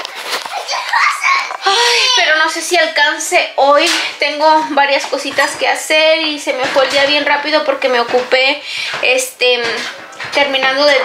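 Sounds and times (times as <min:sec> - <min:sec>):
young child babbling: 0:00.7 - 0:02.3.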